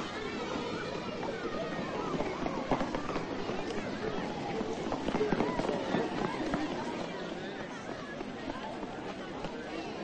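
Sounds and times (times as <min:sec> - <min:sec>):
children shouting and chattering: 0:00.0 - 0:10.0
running footsteps: 0:01.2 - 0:10.0.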